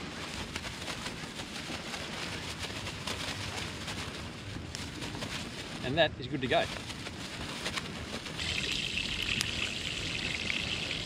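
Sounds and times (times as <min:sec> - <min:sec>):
plastic bag crinkling: 0:00.0 - 0:09.4.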